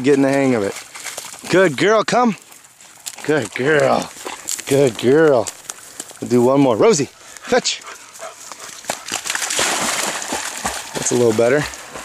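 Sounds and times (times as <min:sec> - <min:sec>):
dog paws slapping water: 0:00.0 - 0:12.0
dog splashing in water: 0:08.0 - 0:12.0.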